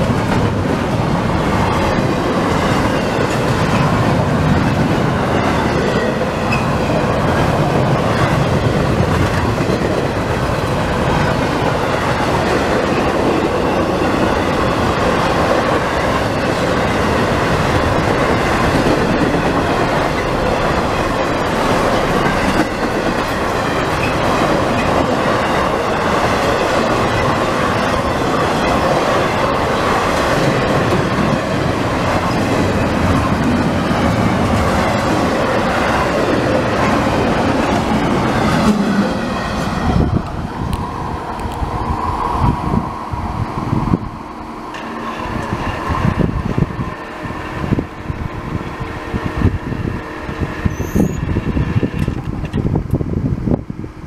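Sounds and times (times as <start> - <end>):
freight train wheels rumbling on rails: 0.0 - 54.0.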